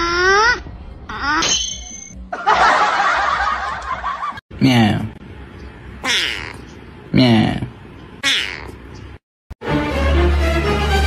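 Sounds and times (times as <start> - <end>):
cat meowing: 6.0 - 6.6, 8.2 - 8.8.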